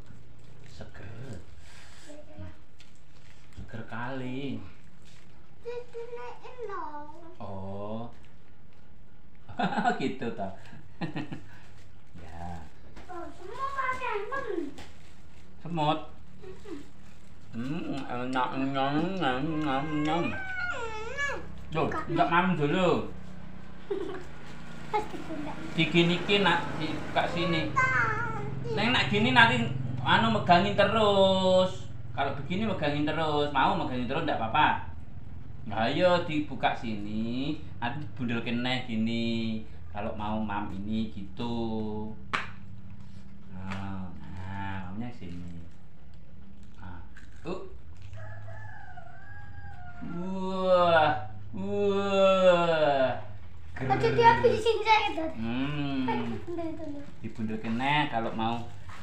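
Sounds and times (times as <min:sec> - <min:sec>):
child crying out: 0:19.3 - 0:22.2
rooster crowing: 0:48.1 - 0:50.4.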